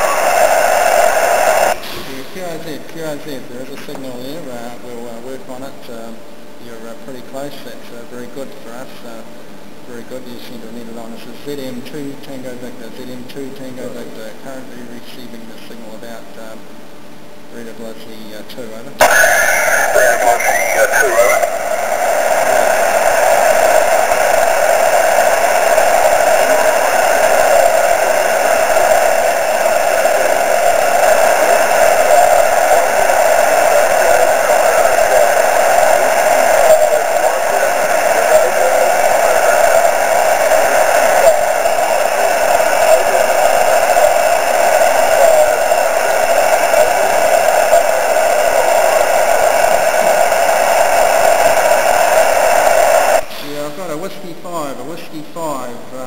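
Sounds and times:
radio receiver noise hiss: 0.0 - 16.6, 17.6 - 55.9.

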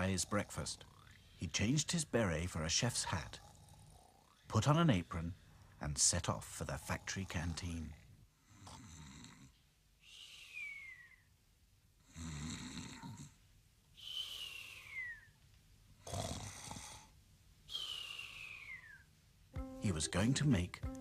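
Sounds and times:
cartoon snoring with whistle: 10.2 - 11.2, 12.1 - 13.3, 14.0 - 15.3, 17.7 - 19.1.

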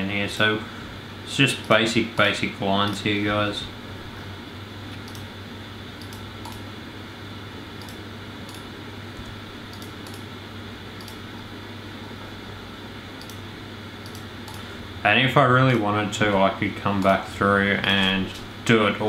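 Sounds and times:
low room hum: 0.0 - 19.0
computer mouse clicking: 4.9 - 5.3, 6.0 - 6.6, 7.8 - 10.3, 11.0 - 11.2, 13.2 - 13.4, 14.0 - 14.7.

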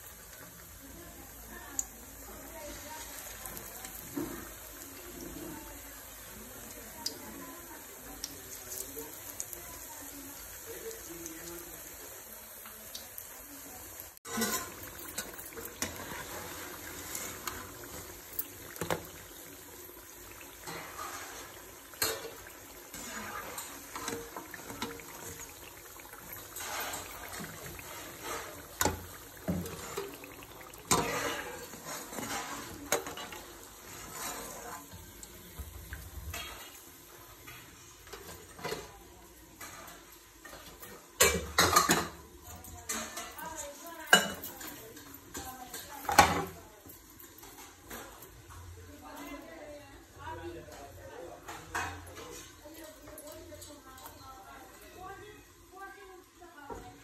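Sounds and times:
hot oil sizzling: 0.0 - 57.0.

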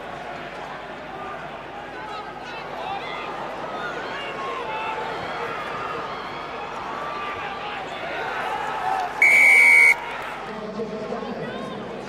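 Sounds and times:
noisy stadium crowd: 0.0 - 12.0
referee's whistle blast: 9.2 - 10.0.

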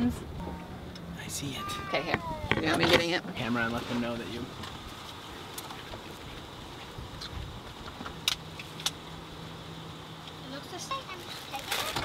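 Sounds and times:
car rumble: 0.0 - 12.0.

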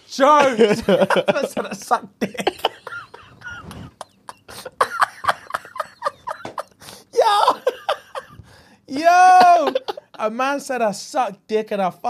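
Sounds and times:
men laughing hard: 0.3 - 8.6, 9.2 - 10.2.

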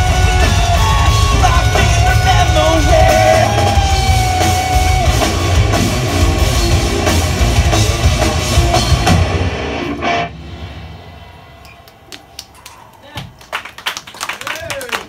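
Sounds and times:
distorted electric guitars: 0.0 - 12.0
drum kit: 0.0 - 13.4
audience clapping: 11.6 - 15.0.

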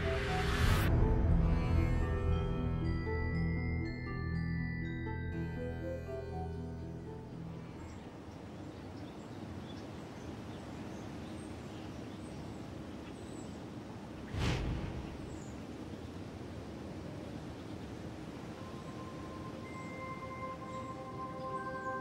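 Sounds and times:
deep hit: 14.3 - 15.5.

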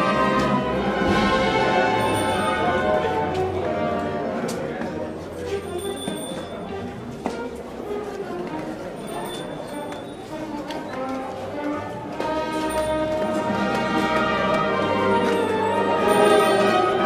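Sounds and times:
processional band music: 0.0 - 5.0, 10.2 - 17.0
street crowd chatter: 0.0 - 17.0.

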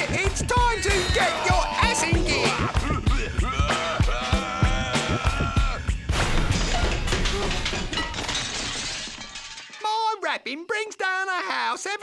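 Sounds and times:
cartoon music with sung note: 0.4 - 6.0
crash and shatter effect: 6.1 - 9.9.

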